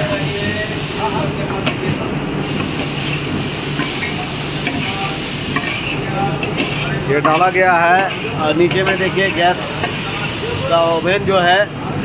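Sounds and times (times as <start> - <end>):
hot syrup pouring and sizzling: 0.0 - 1.4, 2.4 - 11.4.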